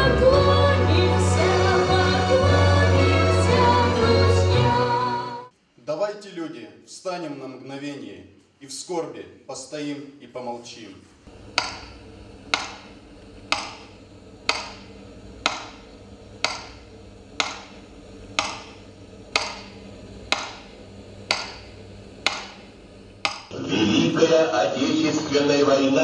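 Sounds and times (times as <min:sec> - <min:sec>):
steady low hum: 0:10.4 - 0:26.0
metronome ticking: 0:11.5 - 0:23.5.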